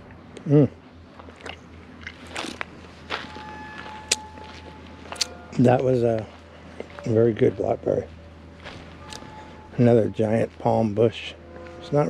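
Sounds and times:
person chewing berry: 0.0 - 3.4, 4.0 - 5.6, 9.0 - 9.4.

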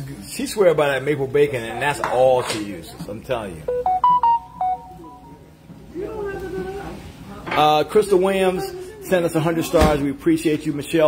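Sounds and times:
electronic chime melody: 3.7 - 5.5.

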